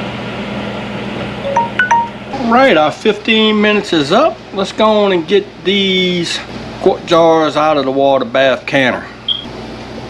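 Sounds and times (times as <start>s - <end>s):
alarm chime notes: 1.4s - 2.3s.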